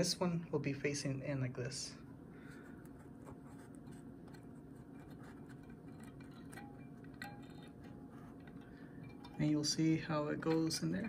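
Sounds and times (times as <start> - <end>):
metal parts clicking and scraping: 3.9 - 11.0.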